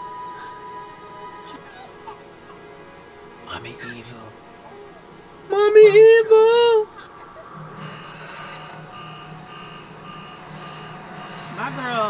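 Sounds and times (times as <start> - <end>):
steady low hum: 0.0 - 12.0
high electronic beeping tone: 7.4 - 12.0.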